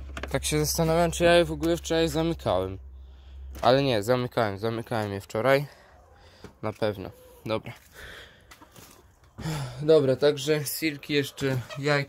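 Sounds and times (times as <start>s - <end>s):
man speaking: 0.3s - 2.8s, 3.6s - 5.7s, 6.6s - 7.9s, 9.5s - 12.0s
breathy exhale: 7.9s - 8.5s.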